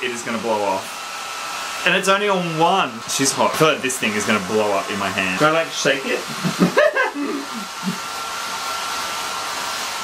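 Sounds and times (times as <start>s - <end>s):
hair dryer blowing with high whine: 0.0s - 10.0s.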